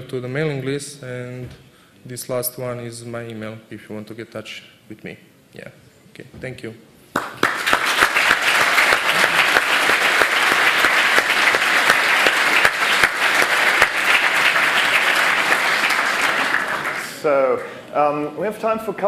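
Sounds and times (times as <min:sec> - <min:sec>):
audience applauding: 0:07.1 - 0:17.7.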